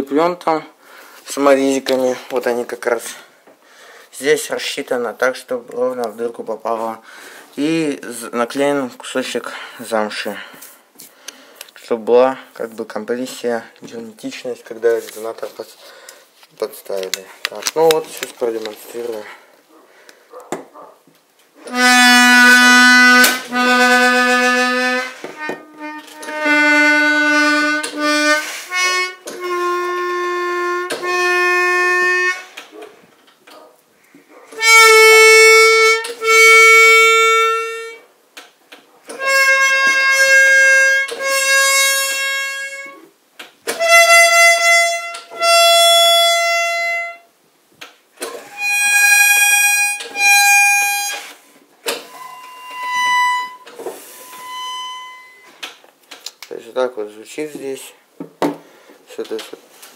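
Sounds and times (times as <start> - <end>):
accordion reeds sounding: 21.6 - 32.8, 34.6 - 38.0, 39.1 - 43.1, 43.7 - 47.2, 48.2 - 55.8.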